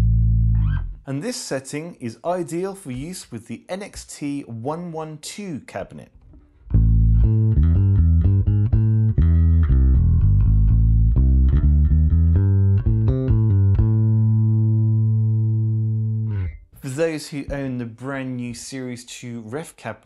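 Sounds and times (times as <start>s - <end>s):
electric bass guitar plucked: 0.0s - 1.0s, 6.2s - 16.8s.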